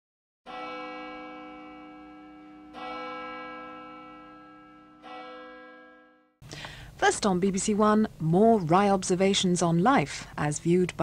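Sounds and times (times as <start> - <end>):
bell chimes ringing: 0.5 - 6.4.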